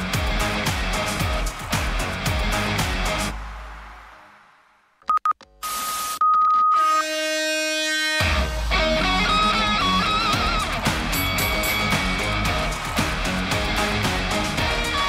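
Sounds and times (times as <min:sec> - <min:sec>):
band theme tune with heavy bass: 0:00.0 - 0:03.8, 0:07.8 - 0:15.0.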